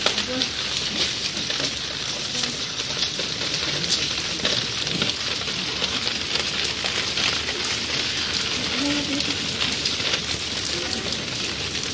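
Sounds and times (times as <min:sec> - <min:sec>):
water splashing down a wall: 0:00.0 - 0:11.9.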